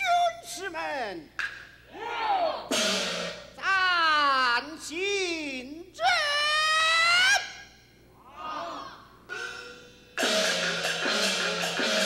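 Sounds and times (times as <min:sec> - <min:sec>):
percussion crash: 0:09.3 - 0:12.0.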